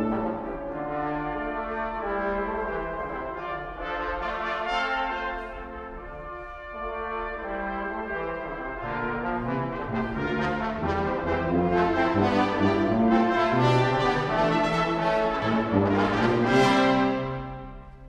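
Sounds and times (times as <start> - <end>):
brass quintet playing: 0.0 - 18.0.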